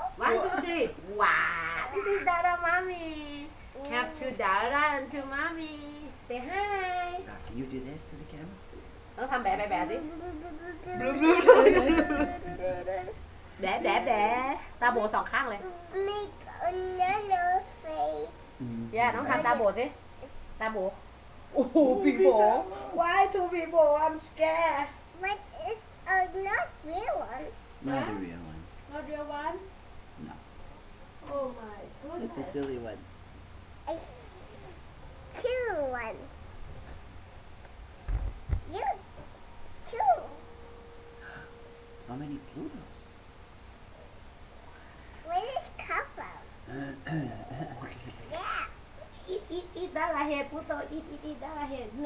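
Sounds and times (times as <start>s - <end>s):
toddler singing held notes: 9.9s - 12.6s
child's high-pitched vocal sounds: 15.6s - 18.3s, 33.9s - 34.8s
low thumps near microphone: 38.0s - 39.2s.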